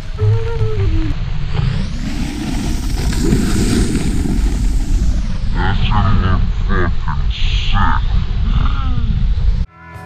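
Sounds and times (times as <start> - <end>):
wind rumbling on microphone: 0.0 - 9.7
snowboard sliding over snow: 1.3 - 7.4.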